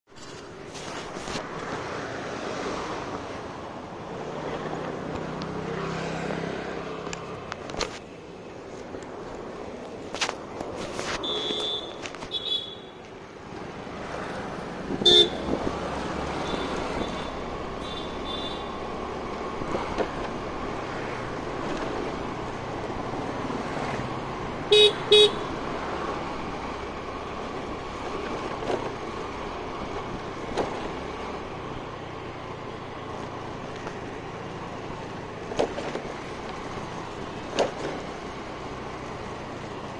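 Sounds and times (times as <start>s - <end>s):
road noise: 0.0s - 39.9s
horn beeps: 11.2s - 12.9s, 15.0s - 15.5s
motor scooter engine: 13.5s - 39.9s.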